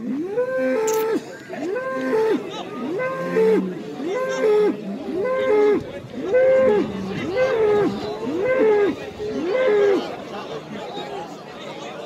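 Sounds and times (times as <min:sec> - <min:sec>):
bull bellowing: 0:01.8 - 0:10.0.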